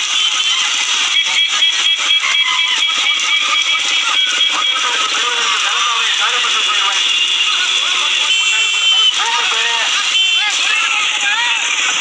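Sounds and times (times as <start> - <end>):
loud steady din: 0.0 - 12.0.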